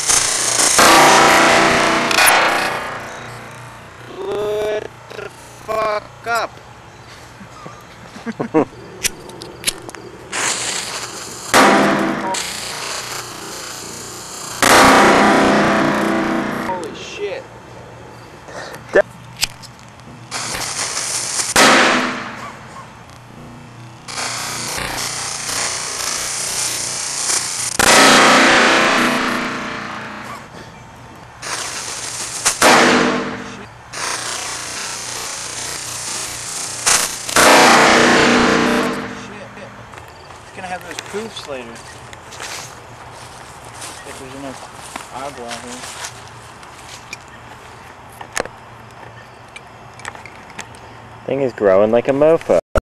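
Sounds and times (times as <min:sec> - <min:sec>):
firework hissing bursts: 0:00.0 - 0:03.5, 0:10.3 - 0:15.8, 0:20.3 - 0:22.7, 0:24.0 - 0:30.5, 0:31.4 - 0:39.4
firework sharp pops: 0:00.0 - 0:03.7, 0:09.0 - 0:16.8, 0:20.3 - 0:23.3, 0:24.0 - 0:30.5, 0:31.4 - 0:40.0.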